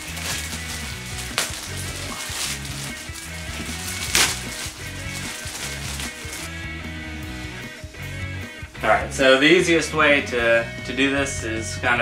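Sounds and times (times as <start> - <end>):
plastic bag crackling: 0.0 - 6.6
background music with bass line: 0.0 - 12.0.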